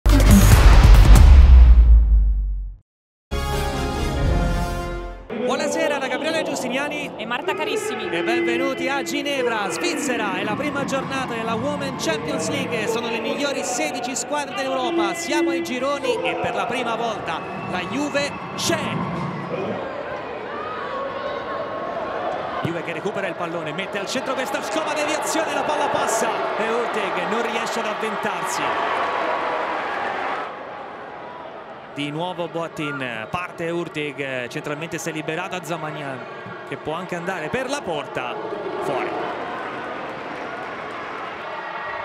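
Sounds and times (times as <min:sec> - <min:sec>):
stadium crowd noise: 0:05.3 - 0:42.0.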